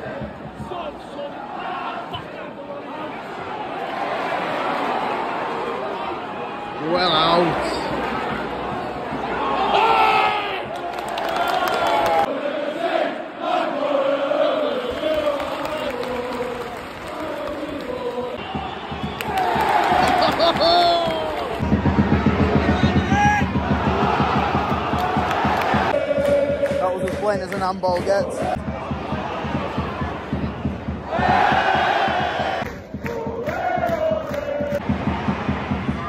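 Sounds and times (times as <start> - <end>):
rhythmic low thuds: 0.0 - 1.1, 7.5 - 9.9, 14.9 - 36.0
crowd singing and chanting: 0.0 - 6.5, 7.2 - 36.0.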